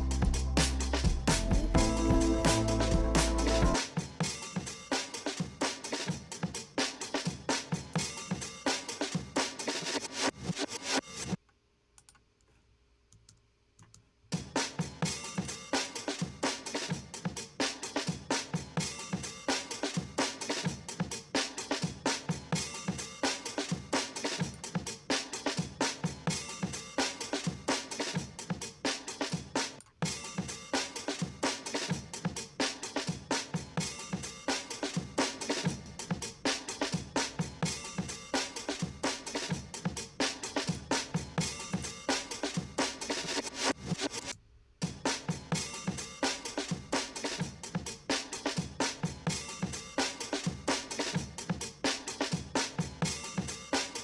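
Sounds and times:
drum kit groove: 0.0s - 11.4s, 14.3s - 54.0s.

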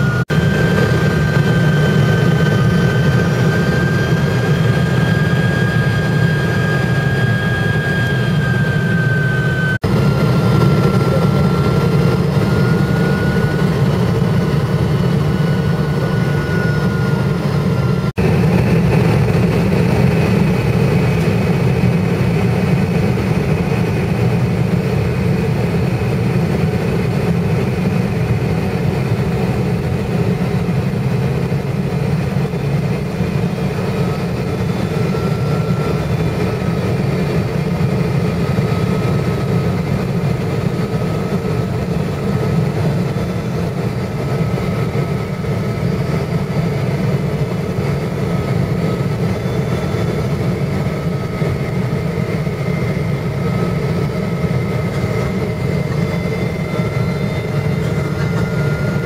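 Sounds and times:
aircraft cabin engine roar: 0.0s - 59.0s.

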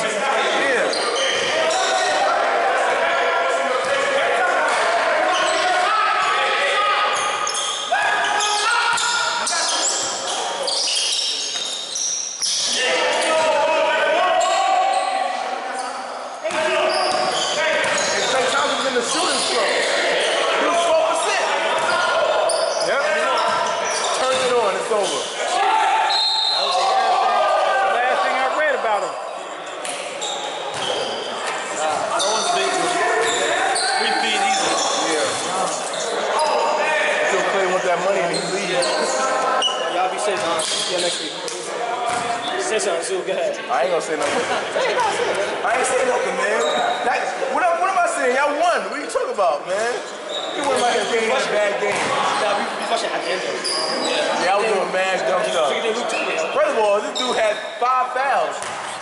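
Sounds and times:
players shouting and chatting: 0.0s - 59.0s
basketball bouncing on gym floor: 58.6s - 58.9s.

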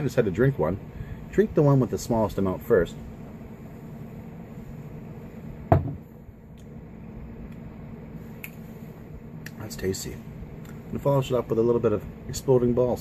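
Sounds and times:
low room hum: 0.0s - 13.0s
sharp knock: 5.7s - 6.0s.

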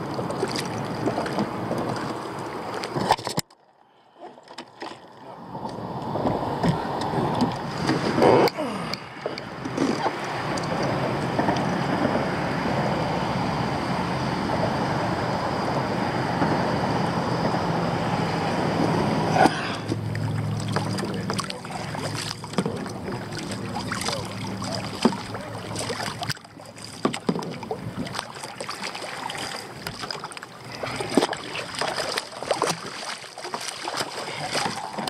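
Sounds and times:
fish thrashing in water: 0.0s - 3.5s, 19.4s - 35.0s
steady rushing noise: 9.4s - 26.2s.

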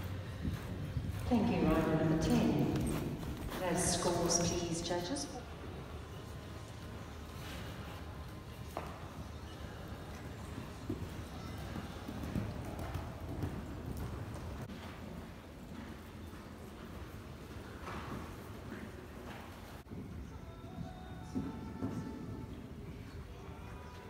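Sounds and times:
hoofbeats on sand: 0.0s - 5.2s, 7.3s - 23.2s.

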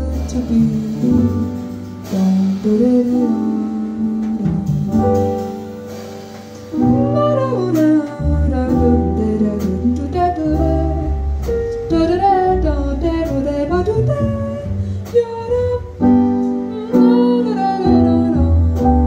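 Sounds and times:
woman singing: 0.0s - 5.4s, 6.8s - 19.0s
drums: 0.0s - 19.0s
piano: 0.0s - 19.0s
plucked double bass: 0.0s - 19.0s.

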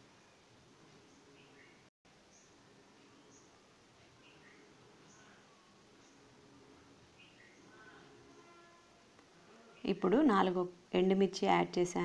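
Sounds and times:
faint low hum: 0.0s - 12.0s
woman speaking: 9.8s - 12.0s.

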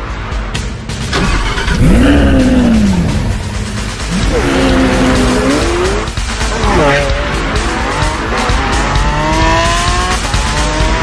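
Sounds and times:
loud bass-heavy music: 0.0s - 11.0s
sports car engine starting: 1.0s - 11.0s.

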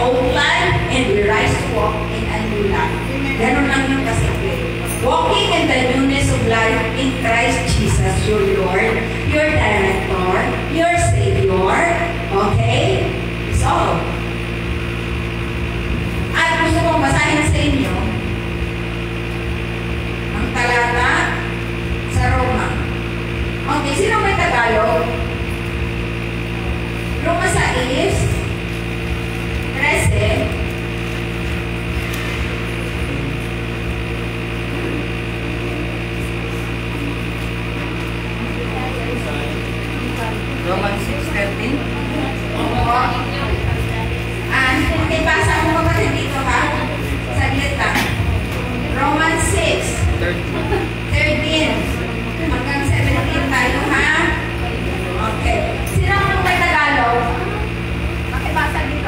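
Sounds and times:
low droning hum: 0.0s - 59.0s
person speaking: 34.6s - 59.0s.

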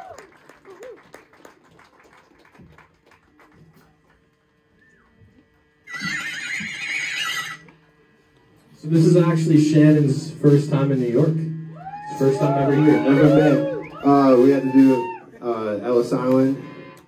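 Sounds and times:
audience chatter and whoops: 0.0s - 1.2s, 11.7s - 15.6s
loud high wavering yell: 11.7s - 15.4s, 16.6s - 17.0s.

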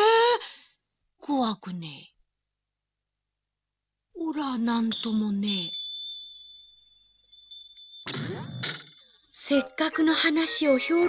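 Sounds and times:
high ringing tone: 4.9s - 9.3s.

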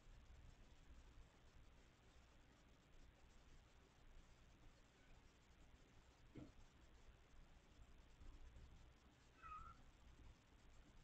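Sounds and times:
cat meowing faintly: 9.4s - 9.9s.

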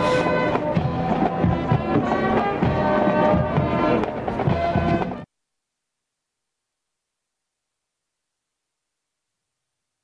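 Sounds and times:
brass band music: 0.0s - 5.3s.

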